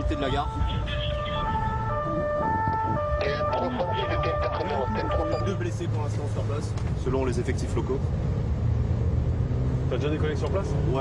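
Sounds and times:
police two-tone siren: 0.0s - 5.6s
car engine and road rumble: 0.0s - 11.0s.

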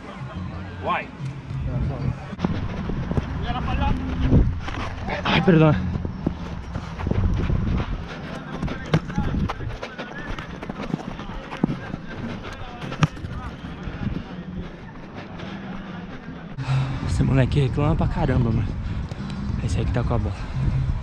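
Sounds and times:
running footsteps on turf: 2.3s - 16.6s
faint players calling: 2.4s - 16.6s
ball being kicked: 5.9s - 14.3s.

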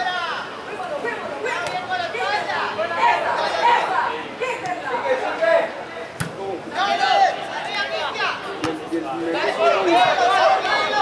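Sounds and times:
overlapping voices talking: 0.0s - 11.0s.

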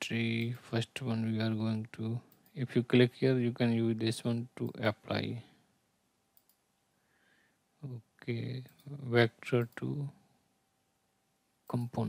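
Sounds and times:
person speaking: 0.0s - 5.6s, 7.8s - 10.2s, 11.7s - 12.0s
faint mouse clicks: 6.3s - 6.7s.

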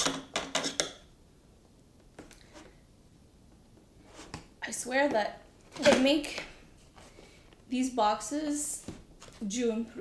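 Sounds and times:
woman's voice: 4.6s - 6.6s, 7.7s - 10.0s.

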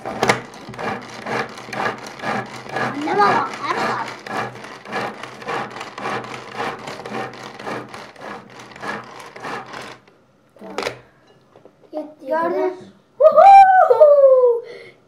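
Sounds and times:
cord food chopper rasping: 0.0s - 10.1s.

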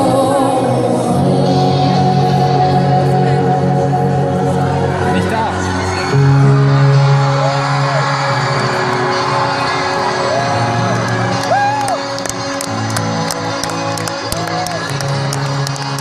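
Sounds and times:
crowd noise: 0.0s - 16.0s
crowd whooping: 5.0s - 15.9s.

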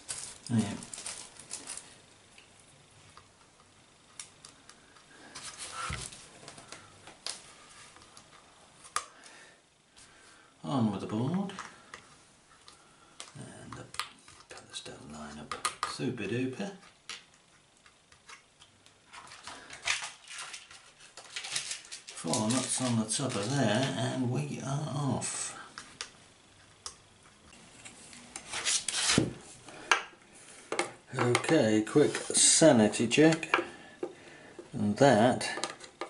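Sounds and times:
metal parts scraping and rustling: 0.0s - 1.9s.

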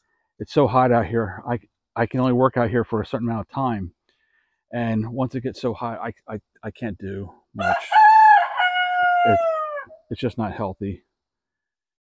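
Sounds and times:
rooster crowing: 7.6s - 10.0s.

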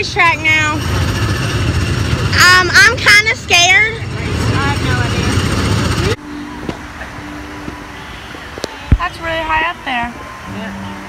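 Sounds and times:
distant voices: 0.0s - 11.0s.

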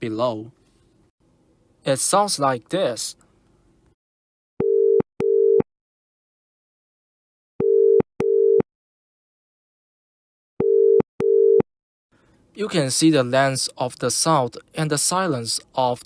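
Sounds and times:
telephone ringback tone: 4.6s - 5.6s, 7.6s - 8.6s, 10.6s - 11.6s.

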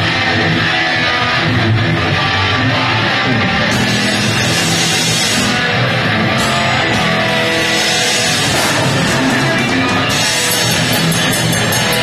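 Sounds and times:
electric guitar: 0.0s - 12.0s
rock band playing heavy metal: 0.0s - 12.0s.

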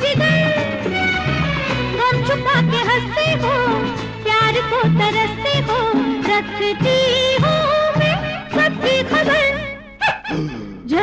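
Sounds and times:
film song music: 0.0s - 10.8s.

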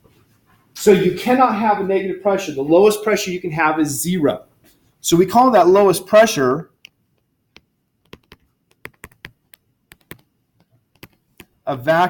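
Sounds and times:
stylus tapping on tablet screen: 6.8s - 11.6s.

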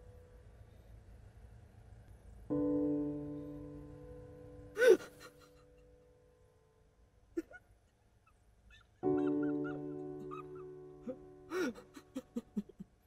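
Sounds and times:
sustained piano chord: 2.5s - 4.9s
man sobbing: 4.8s - 5.9s, 9.0s - 13.0s.

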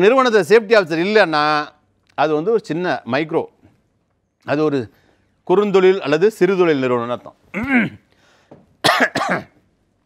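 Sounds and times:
man clearing his throat: 7.5s - 8.0s, 8.8s - 9.6s
faint breath: 8.1s - 8.7s.

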